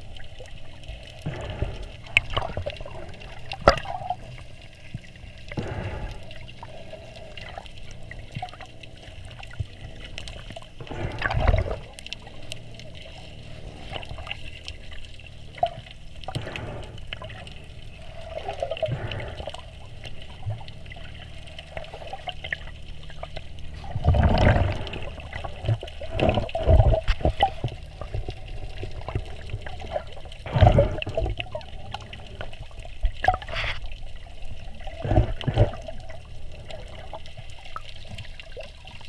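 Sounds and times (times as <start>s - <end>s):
muffled underwater swirl and bubbling: 0.0s - 39.0s
deep rushes of water: 23.7s - 32.3s.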